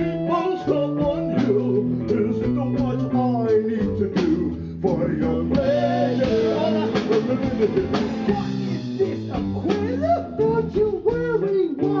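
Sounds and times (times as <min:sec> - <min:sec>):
drums: 0:00.0 - 0:12.0
guitar: 0:00.0 - 0:12.0
rock band playing: 0:00.0 - 0:12.0.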